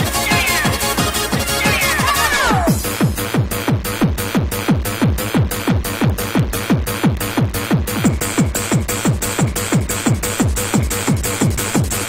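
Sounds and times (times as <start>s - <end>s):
fast electronic dance music: 0.0s - 12.0s.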